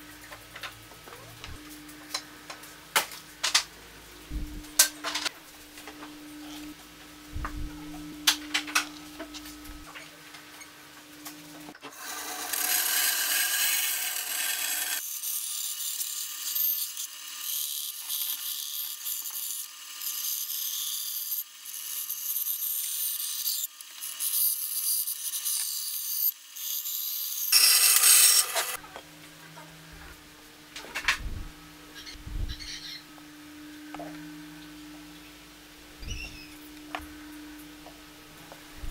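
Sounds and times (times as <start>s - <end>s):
band saw cutting wood: 11.9s - 20.7s, 27.4s - 28.8s.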